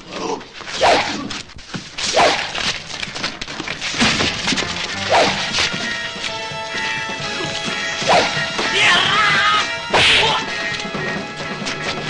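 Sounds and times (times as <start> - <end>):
film background music: 4.0 - 12.0.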